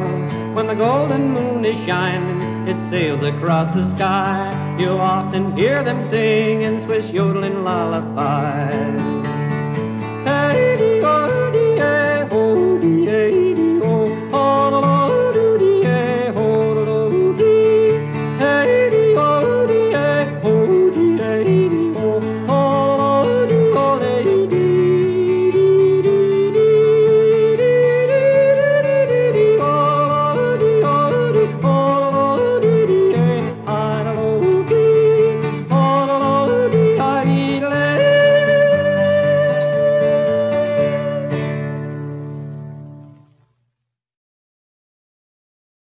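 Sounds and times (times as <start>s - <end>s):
man yodeling: 0.0s - 9.3s, 10.2s - 41.7s
country instrumental backing: 0.0s - 43.4s.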